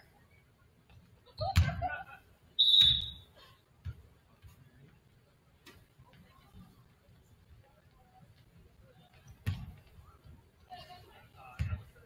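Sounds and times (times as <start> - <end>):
referee's whistle blast: 2.6 - 3.3.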